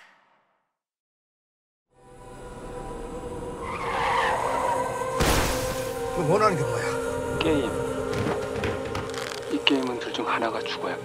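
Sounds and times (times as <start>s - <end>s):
car tyres squealing: 3.6s - 5.2s
steady humming drone: 4.8s - 11.0s.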